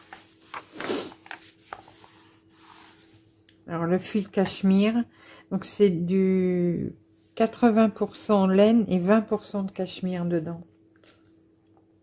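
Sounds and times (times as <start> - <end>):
hand rubbing paper: 0.0 - 3.4.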